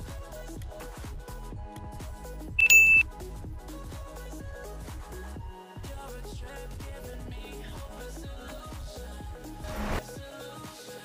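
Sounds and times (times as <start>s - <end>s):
high quiz chime ding: 2.6s - 3.0s.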